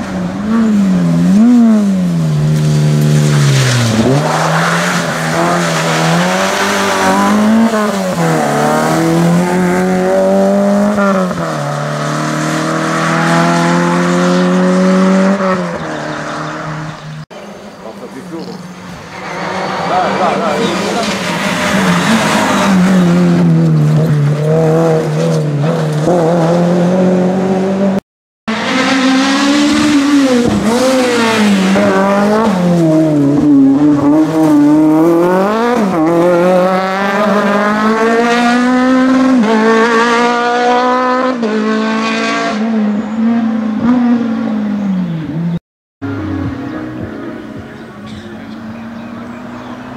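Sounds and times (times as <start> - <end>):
rally car engines revving: 0.0 - 49.9.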